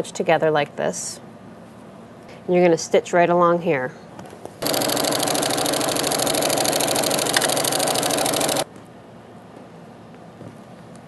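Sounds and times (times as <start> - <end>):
electric sewing machine stitching: 4.6 - 8.6.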